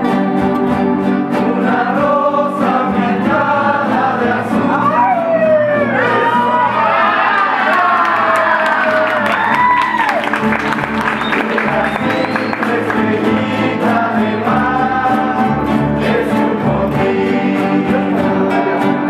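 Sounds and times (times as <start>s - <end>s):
double bass: 0.0s - 7.2s, 9.3s - 19.0s
strummed acoustic guitars: 0.0s - 19.0s
young voices singing together: 1.2s - 8.3s, 10.8s - 19.0s.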